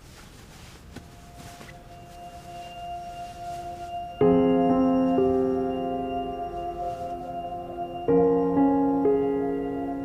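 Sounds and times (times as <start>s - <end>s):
soft held music tones: 0.0s - 10.0s.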